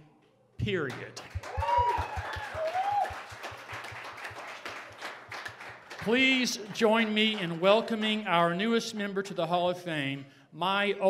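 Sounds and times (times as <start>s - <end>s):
audience applauding: 0.8s - 8.2s.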